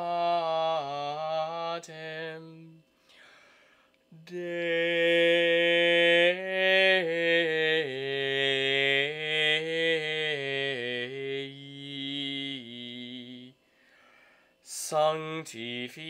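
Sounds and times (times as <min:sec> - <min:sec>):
man singing chant unaccompanied: 0:00.0 - 0:02.8, 0:04.1 - 0:13.6, 0:14.6 - 0:16.0.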